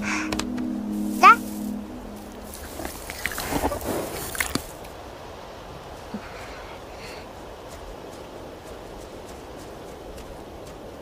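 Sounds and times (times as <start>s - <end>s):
horse snuffling and chewing: 2.6s - 4.8s.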